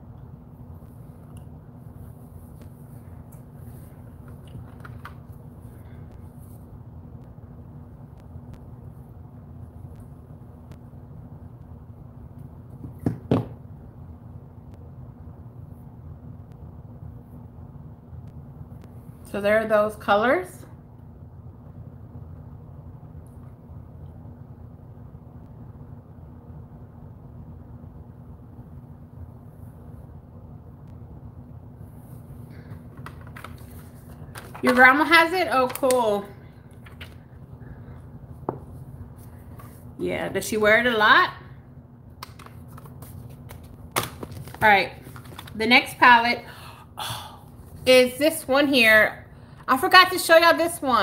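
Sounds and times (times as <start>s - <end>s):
low room hum: 0.0s - 51.0s.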